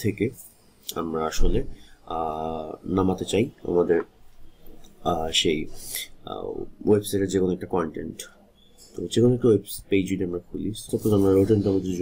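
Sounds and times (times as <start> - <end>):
man speaking: 0.0 - 4.1, 5.0 - 12.0.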